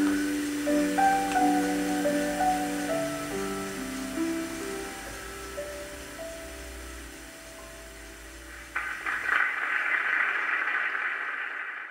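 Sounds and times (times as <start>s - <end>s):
held instrumental notes: 0.0s - 8.5s
audience applause: 8.8s - 11.9s.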